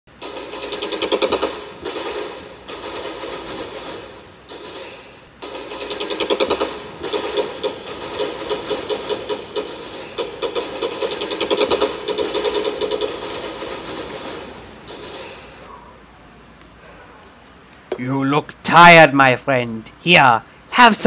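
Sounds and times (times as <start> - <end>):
rapid automatic gunfire: 0.2 - 15.4.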